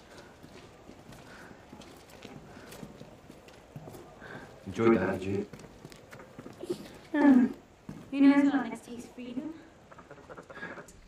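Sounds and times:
clip-clop of horse hooves: 0.0s - 8.4s.

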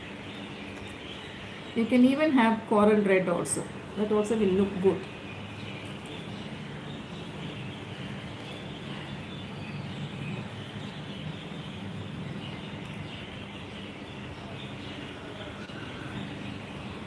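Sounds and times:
even hum and hiss: 0.0s - 17.0s.

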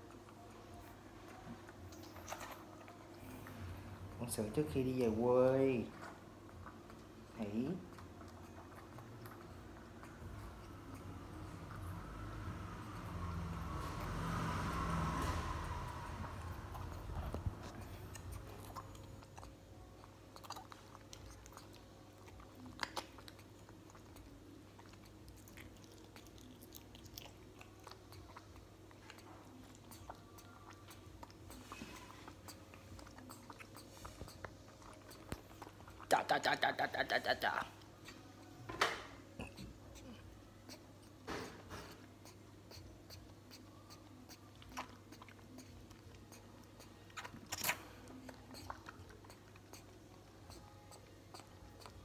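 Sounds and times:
monkey sucking bottle teat: 22.4s - 38.2s, 39.4s - 52.0s
baby monkey sucking clicks: 41.9s - 52.0s.

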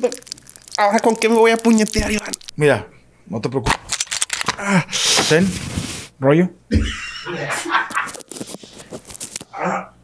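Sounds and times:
men talking: 0.8s - 5.6s, 6.2s - 7.8s
sharp clicks: 1.6s - 2.8s
breathy hiss: 4.6s - 6.1s.

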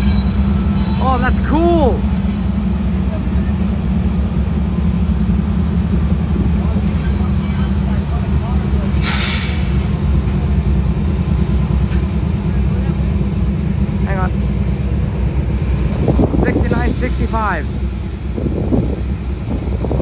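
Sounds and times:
diesel locomotive engine rumbling: 0.0s - 20.0s
burst of hiss: 8.9s - 9.9s.

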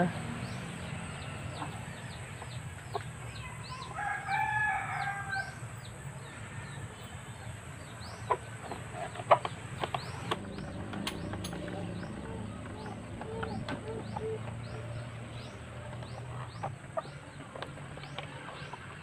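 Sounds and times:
rooster crowing: 3.4s - 7.1s
plastic panels clicking and knocking: 9.3s - 14.7s.

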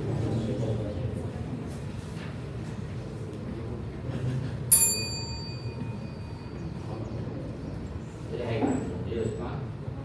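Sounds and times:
small metal bell ringing: 4.7s - 6.8s.

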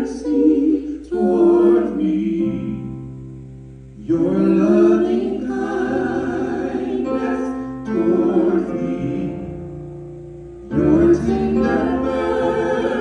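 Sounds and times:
group singing gospel worship song: 0.0s - 3.2s, 4.0s - 9.8s, 10.6s - 13.0s.

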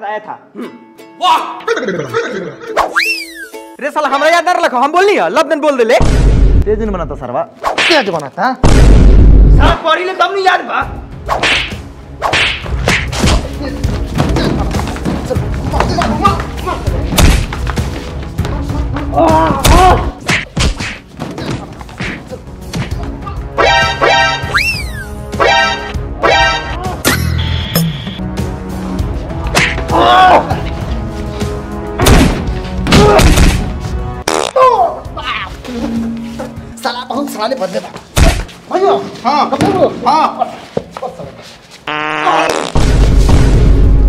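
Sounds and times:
background music: 0.0s - 42.0s
fart-like comic buzz: 34.2s - 34.6s, 41.8s - 42.9s.

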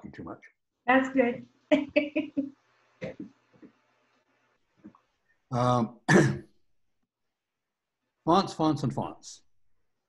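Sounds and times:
man coughing: 5.6s - 6.4s.

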